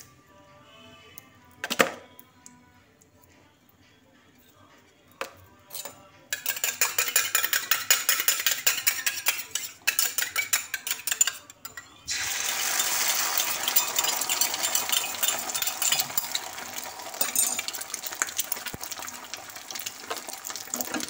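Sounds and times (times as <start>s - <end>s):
utensil clinking against bowl: 5.7s - 11.9s, 12.5s - 18.8s
egg sizzling in hot oil: 12.1s - 21.0s.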